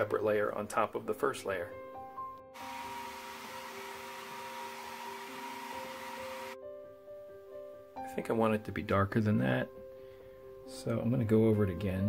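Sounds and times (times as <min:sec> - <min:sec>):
quiet background music: 0:00.0 - 0:12.0
hair dryer blowing: 0:02.6 - 0:06.6.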